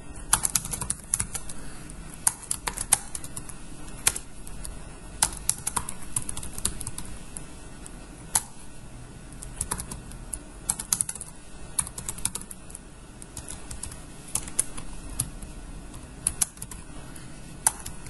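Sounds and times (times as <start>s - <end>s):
computer keyboard typing: 0.2s - 8.6s, 9.3s - 16.9s, 17.6s - 18.0s.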